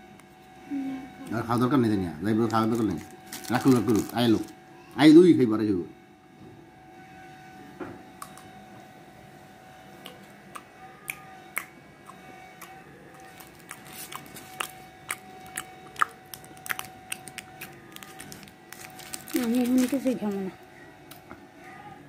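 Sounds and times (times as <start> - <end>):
faint steady hum: 0.0 - 22.0.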